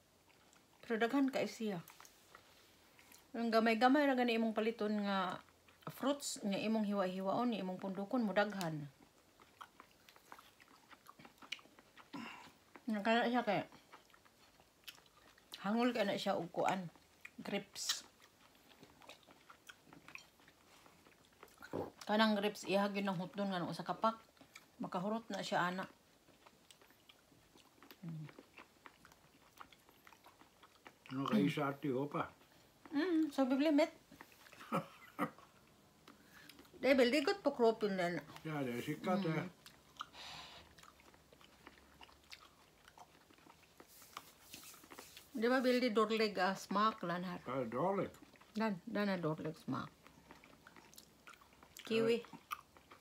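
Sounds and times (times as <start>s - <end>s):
people chewing fruit: 0.0s - 53.0s
short breath: 40.1s - 40.7s.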